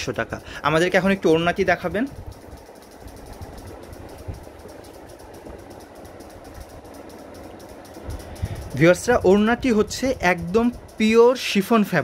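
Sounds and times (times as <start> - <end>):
machinery running: 0.0 - 12.0.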